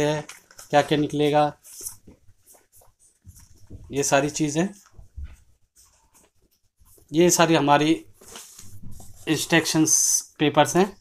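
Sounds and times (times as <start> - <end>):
paper rustling: 0.0 - 10.1.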